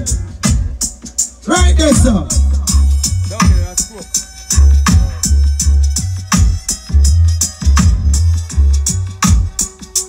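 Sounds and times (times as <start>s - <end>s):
booming bass line: 0.0s - 10.0s
drum beat: 0.0s - 10.0s.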